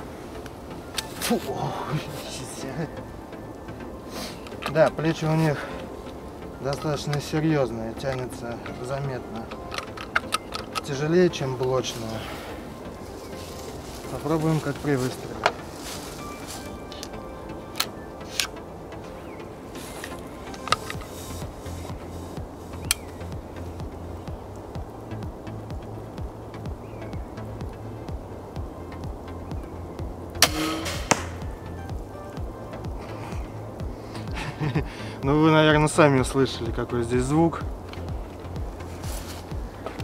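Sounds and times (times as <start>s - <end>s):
crossbow handling clicks: 4.4s - 5.0s, 8.0s - 11.0s, 16.9s - 18.6s, 19.9s - 21.8s, 22.8s - 23.3s
crossbow release crack: 9.7s - 10.9s, 16.9s - 18.6s, 19.9s - 21.1s, 30.4s - 31.4s.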